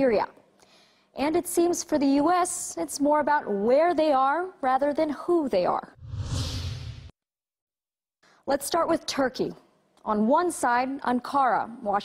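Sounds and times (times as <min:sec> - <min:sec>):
deep rumble: 0:06.0 - 0:07.1
whoosh sound effect: 0:06.0 - 0:07.1.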